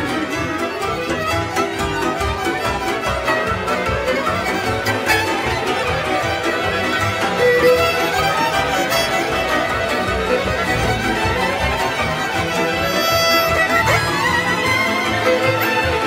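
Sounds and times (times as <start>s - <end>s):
violins playing lively melody: 0.0s - 16.0s.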